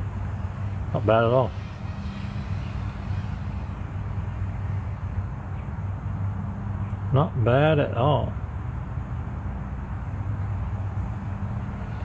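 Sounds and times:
low hum: 0.0 - 7.6, 8.2 - 12.0
outdoor background noise: 0.0 - 12.0.

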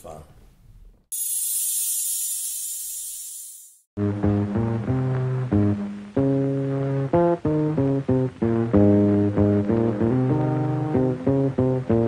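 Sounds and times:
high-pitched static hiss: 1.2 - 3.8.

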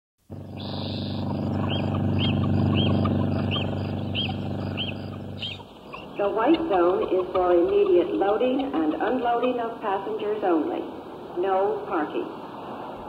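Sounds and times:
vehicle engine droning: 0.2 - 9.2.

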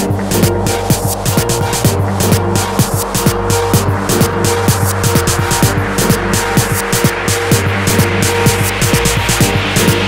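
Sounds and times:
bass line: 0.0 - 10.0
kick drum: 0.0 - 10.0
ticking hi-hats: 0.0 - 10.0.

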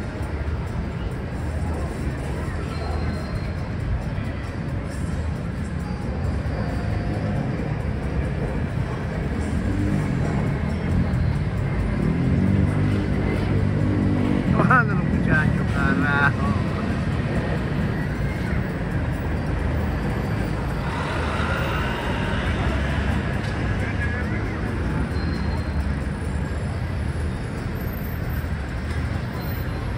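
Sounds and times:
low traffic rumble: 0.0 - 29.9
motor vehicles passing: 0.0 - 29.9
people's voices: 0.0 - 29.9.

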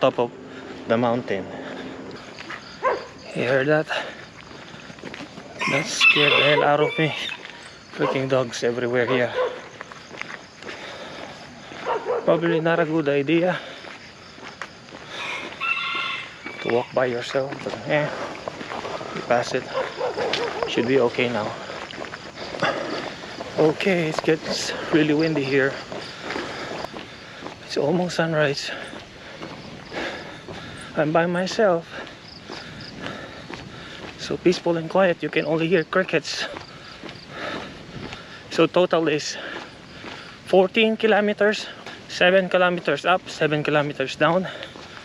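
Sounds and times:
crickets chirring: 0.0 - 45.0
footsteps on road: 0.0 - 45.0.

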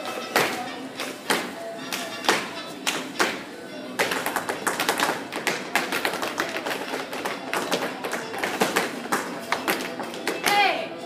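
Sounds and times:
recorded song playing: 0.0 - 11.0
dancers' shoes tapping hard floor: 4.0 - 10.7.

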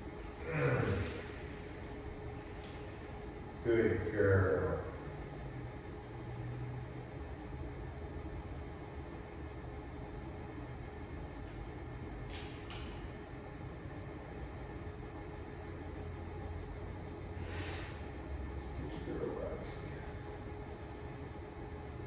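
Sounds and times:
low hum: 0.0 - 22.0.

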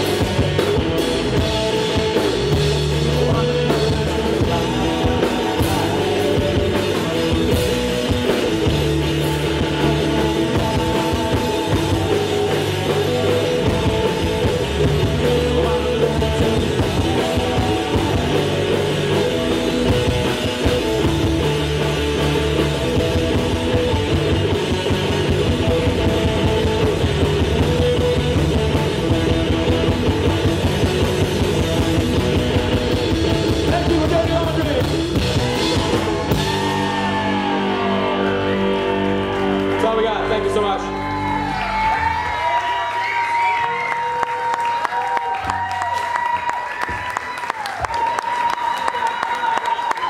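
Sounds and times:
electric bass: 0.0 - 48.1
drum kit: 0.0 - 48.7
electric guitar: 0.0 - 50.0.

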